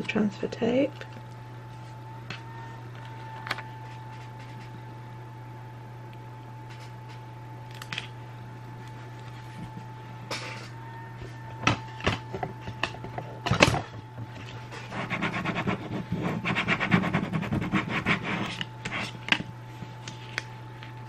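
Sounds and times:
low steady hum: 0.0 - 21.0
clicks and crackles of tape: 6.1 - 8.1.

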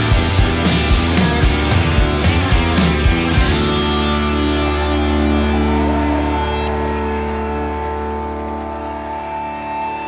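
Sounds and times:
rock band sustained chord: 0.0 - 10.0.

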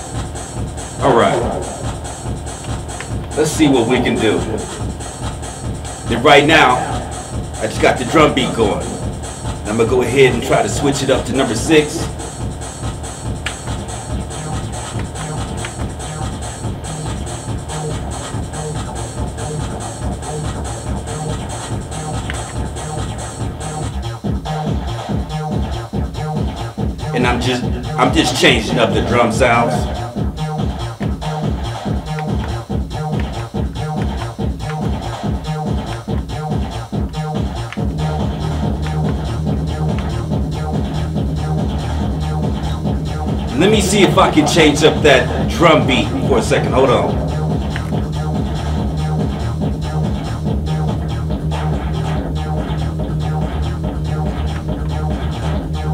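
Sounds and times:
bass line: 0.0 - 55.9
electronic drum beat: 0.0 - 55.9
sustained bass: 0.0 - 55.9.

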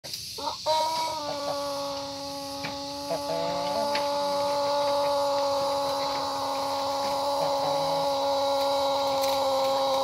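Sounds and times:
rooster crowing: 0.4 - 10.0.

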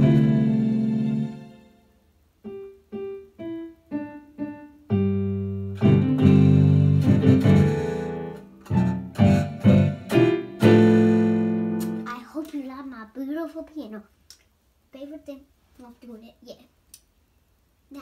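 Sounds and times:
piano played slowly: 0.0 - 12.1.

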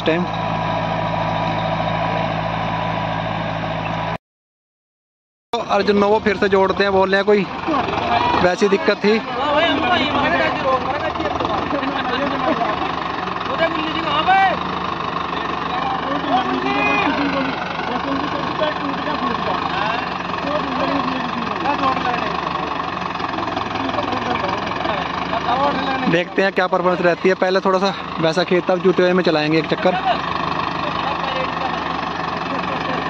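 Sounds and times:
tractor diesel engine idling: 0.0 - 4.2, 5.6 - 33.0
men chattering: 5.6 - 33.0.

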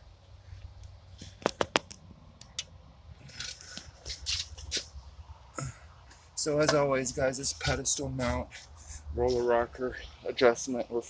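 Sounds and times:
sharp clicks: 0.8 - 2.7
soft rustles: 3.2 - 5.0.

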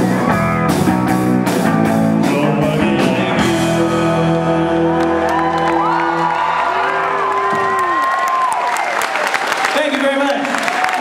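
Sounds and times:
electric guitar and band chord: 0.0 - 6.7
audience whooping and cheering: 4.6 - 11.0.

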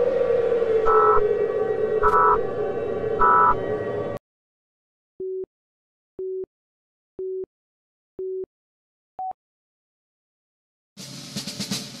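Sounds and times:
siren winding down: 0.0 - 4.2.

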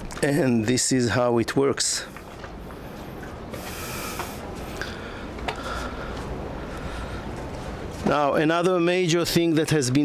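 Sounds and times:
wind: 0.0 - 10.0
low mechanical hum: 2.0 - 8.1.

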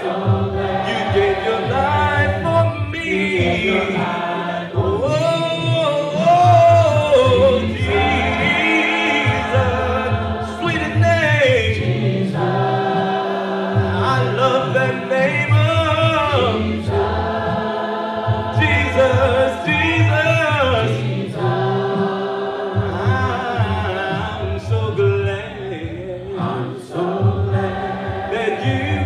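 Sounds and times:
group of voices singing: 0.0 - 29.0
man singing with held notes: 0.8 - 12.6.

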